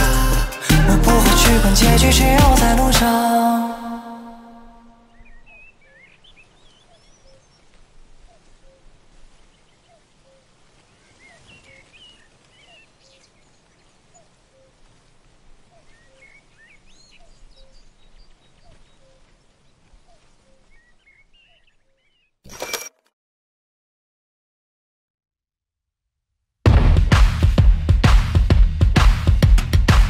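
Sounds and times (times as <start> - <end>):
pop song chord: 0.0 - 4.9
birds chirping: 4.9 - 14.9, 15.6 - 22.4.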